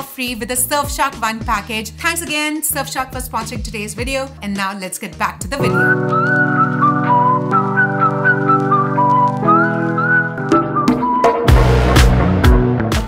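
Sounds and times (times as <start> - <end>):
held chords: 5.4 - 13.0
whistled melody: 5.6 - 12.1.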